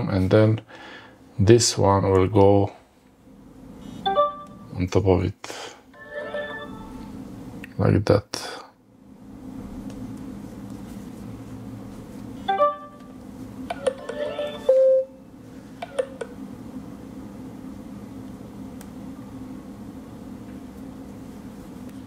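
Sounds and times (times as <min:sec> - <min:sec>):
steady low hum: 0:00.0 - 0:22.0
phone electronic chime: 0:06.0 - 0:07.0, 0:13.8 - 0:15.2.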